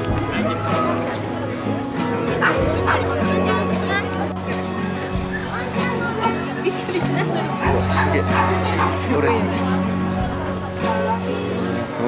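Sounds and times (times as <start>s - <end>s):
background music: 0.0s - 12.0s
dog barking: 7.9s - 9.5s.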